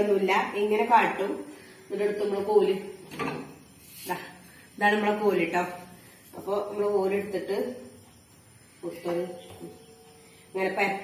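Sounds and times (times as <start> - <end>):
woman speaking: 0.0 - 3.0, 4.0 - 8.0, 8.8 - 9.8, 10.5 - 11.0.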